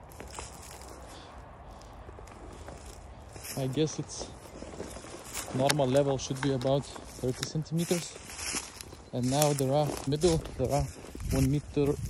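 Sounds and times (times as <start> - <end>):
footsteps through dry grass: 0.0 - 12.0
wind rumble on microphone: 0.0 - 12.0.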